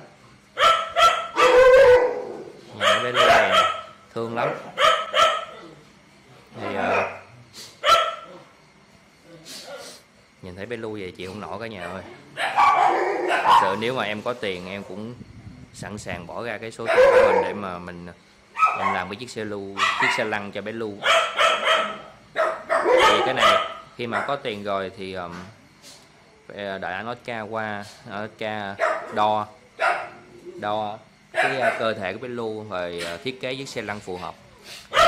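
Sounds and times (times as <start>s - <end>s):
dog barking: 0.6s - 5.6s, 6.6s - 8.3s, 11.8s - 13.8s, 16.8s - 17.6s, 18.6s - 19.1s, 19.8s - 20.4s, 21.0s - 24.5s, 28.8s - 30.3s, 31.3s - 32.0s.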